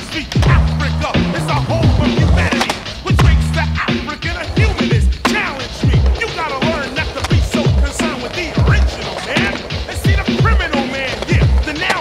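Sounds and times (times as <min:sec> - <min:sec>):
hip hop music: 0:00.0 - 0:12.0
skateboard clacks: 0:00.0 - 0:12.0
skateboard wheels rolling on concrete: 0:00.0 - 0:12.0.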